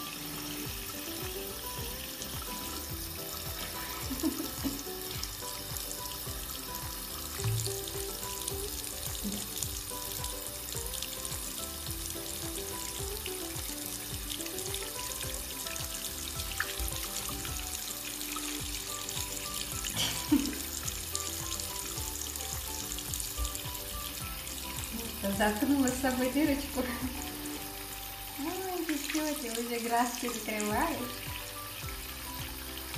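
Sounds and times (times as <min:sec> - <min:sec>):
soft music: 0:00.0 - 0:32.9
tap water running into sink: 0:00.0 - 0:32.9.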